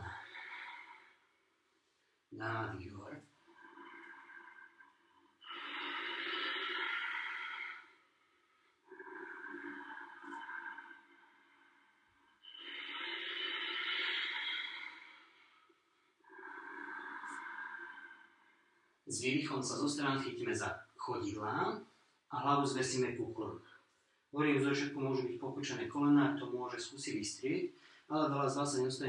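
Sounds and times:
man breathing deeply: 0.0s - 1.3s, 3.5s - 19.0s.

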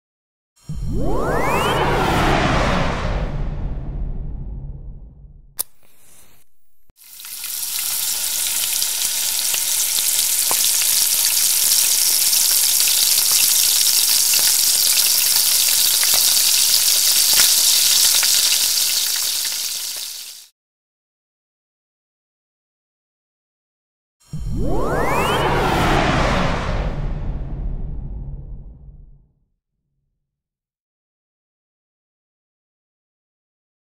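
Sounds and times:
whooshing swoosh: 0.6s - 6.9s, 24.3s - 29.2s
food sizzling in a pan: 7.0s - 20.5s.

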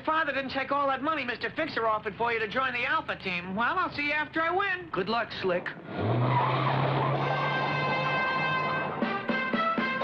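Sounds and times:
tyre screech: 5.9s - 9.0s
cartoon engine drone: 6.1s - 9.4s
music: 7.1s - 10.0s.

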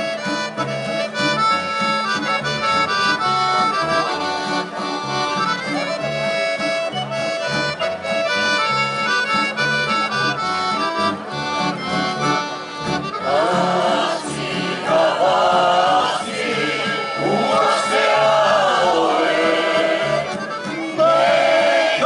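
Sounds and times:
accordion: 0.0s - 22.0s
mixed choir singing: 13.2s - 22.0s.

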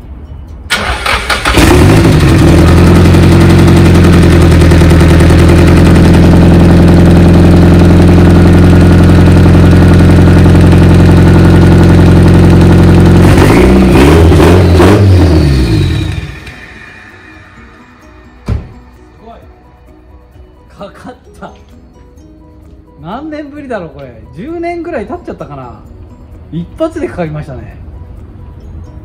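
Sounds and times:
car engine cranking and starting: 0.7s - 17.6s
engine revving: 0.7s - 17.7s
car engine idling: 0.7s - 18.8s.

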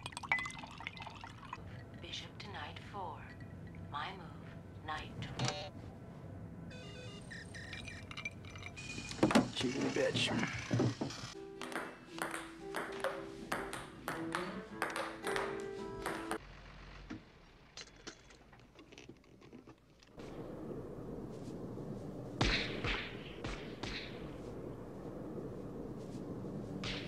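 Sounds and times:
electronic pings and crackles: 6.7s - 8.1s
wind gusts: 20.2s - 27.0s.

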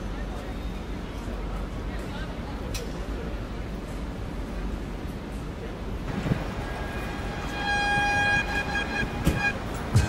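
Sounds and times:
street noise: 0.0s - 10.0s
vehicle horn long note: 6.6s - 10.0s.

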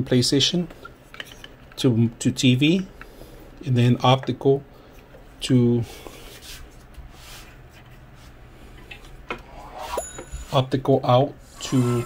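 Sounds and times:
hand rubbing over desk: 6.2s - 8.4s.

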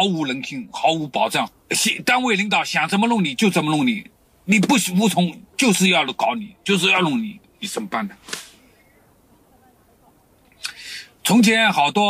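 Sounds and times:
man speaking: 0.0s - 8.3s, 10.7s - 12.0s
brief sharp hiss: 8.2s - 8.7s.

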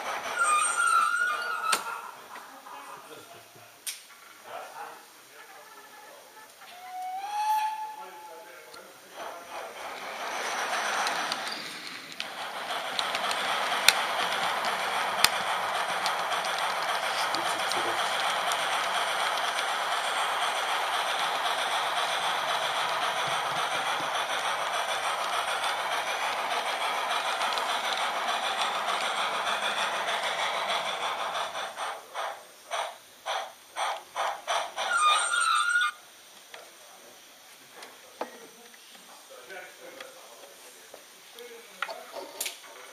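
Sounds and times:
model train running whir: 0.0s - 42.9s
sharp clicks: 11.0s - 23.0s.

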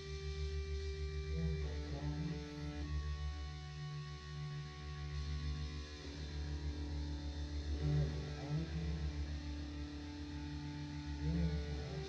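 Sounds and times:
bass guitar droning: 0.0s - 12.0s
electric guitar droning: 0.0s - 12.0s
low drone: 0.0s - 12.0s.

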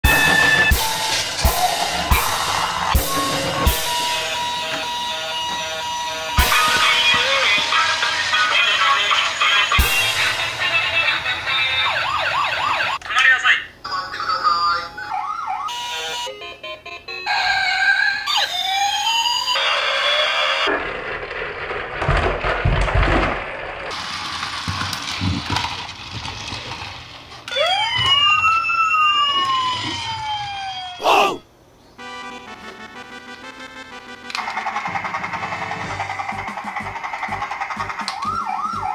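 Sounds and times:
toy siren wails: 0.1s - 8.0s, 15.0s - 20.7s, 27.5s - 31.2s, 38.0s - 38.9s.

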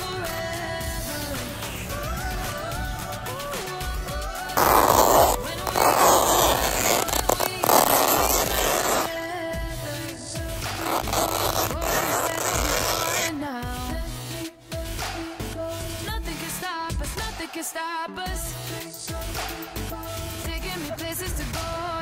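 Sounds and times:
background music: 0.0s - 22.0s
knife ripping fabric: 4.6s - 9.1s, 10.7s - 13.3s.

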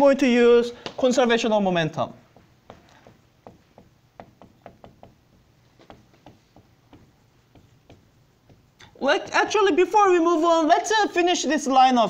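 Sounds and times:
marker tapping on whiteboard: 2.2s - 8.9s.

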